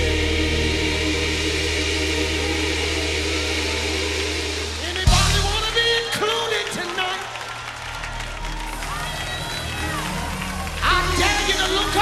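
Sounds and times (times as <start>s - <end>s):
band holding low chord: 0.0s - 5.8s.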